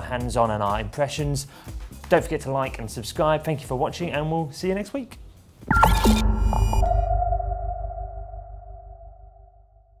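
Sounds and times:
synthesizer chord over deep bass: 5.7s - 10.0s.

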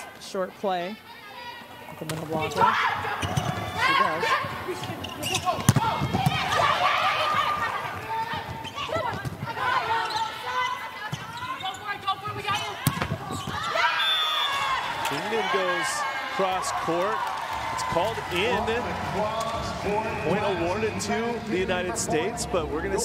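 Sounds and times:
crowd shouting and cheering: 0.0s - 23.0s
volleyball being struck: 5.5s - 6.7s.

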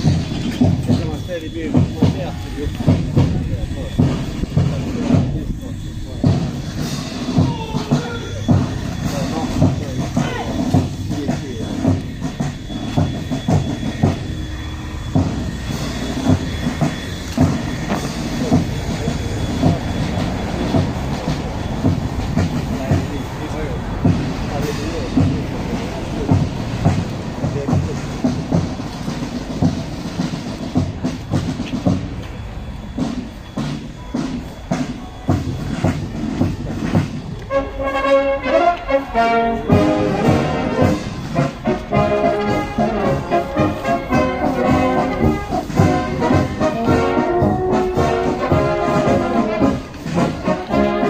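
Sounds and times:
soldiers marching on asphalt: 0.0s - 51.0s
brass section chords: 37.4s - 51.0s.

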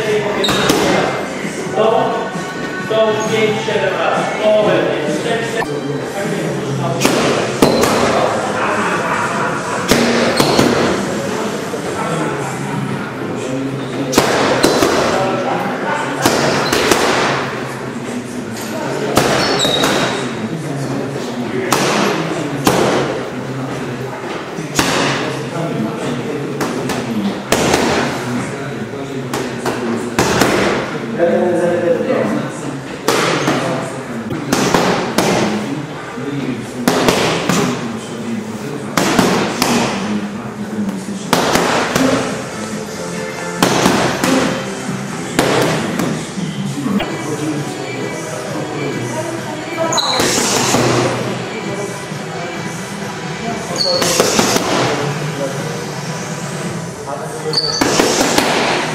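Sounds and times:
background music: 0.0s - 7.7s, 41.3s - 57.4s
steady background noise: 0.0s - 58.9s
boxing gloves hitting focus mitts: 0.4s - 1.0s, 14.1s - 15.2s, 16.2s - 17.4s, 26.6s - 28.2s, 29.4s - 30.9s, 34.3s - 35.6s, 36.8s - 37.8s, 39.0s - 40.1s, 41.3s - 42.3s, 43.6s - 44.6s, 45.4s - 46.1s, 57.8s - 58.9s.

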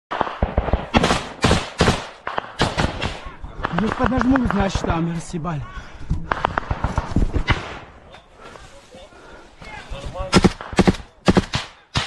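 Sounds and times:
gunshots: 0.1s - 5.0s, 6.2s - 8.1s, 10.2s - 12.0s.

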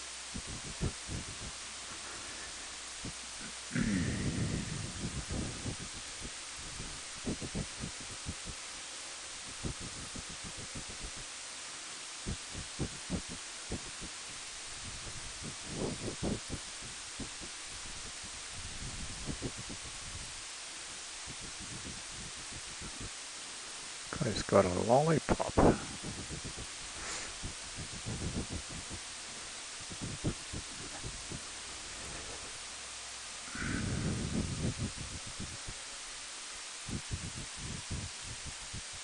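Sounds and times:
wind buffeting microphone: 0.3s - 3.2s, 3.8s - 8.6s, 9.4s - 11.2s, 12.3s - 20.4s, 21.2s - 23.2s, 25.4s - 32.6s, 33.6s - 35.8s, 36.9s - 39.0s.

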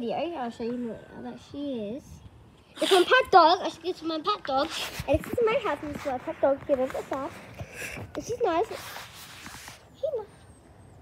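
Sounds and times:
fabric brushing over microphone: 4.5s - 10.0s.

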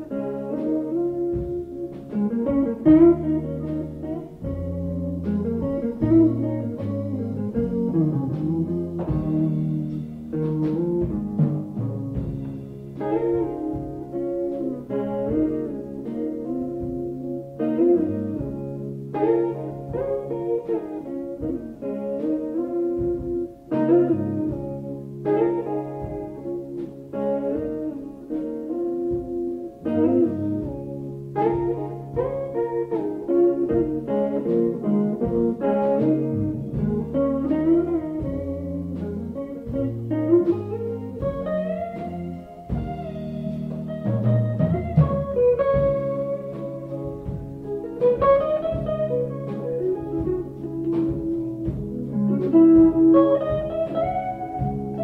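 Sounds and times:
bass line: 0.0s - 27.7s, 28.8s - 55.0s
electric guitar jazz chords: 0.0s - 55.0s.

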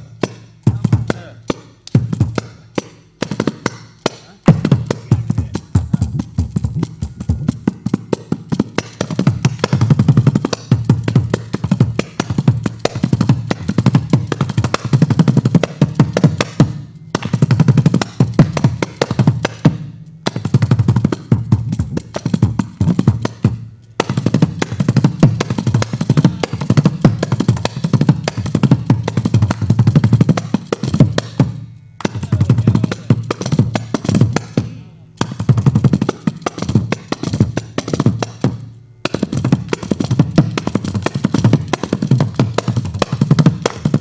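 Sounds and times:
frame drum with jingle: 0.0s - 44.0s.

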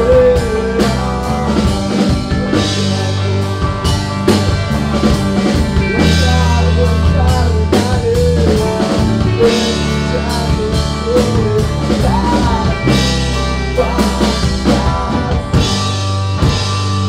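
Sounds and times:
rock band playing: 0.0s - 17.0s.

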